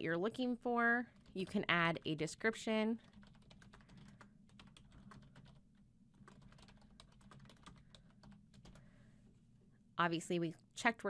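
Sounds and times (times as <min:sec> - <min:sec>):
computer keyboard typing: 0:01.1 - 0:01.7, 0:03.0 - 0:08.8.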